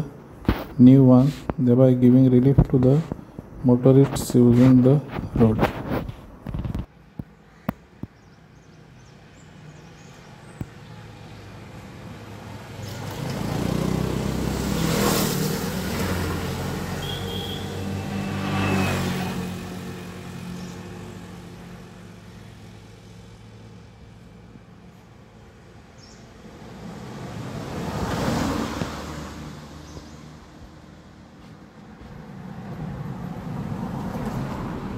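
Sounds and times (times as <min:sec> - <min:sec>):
tyre noise on road: 0:00.0 - 0:34.9
motor vehicle passing: 0:10.7 - 0:34.9.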